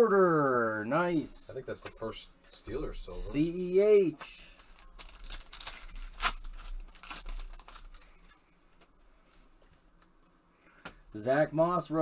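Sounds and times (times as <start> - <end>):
foil wrapper crinkling and tearing: 4.5 - 8.4.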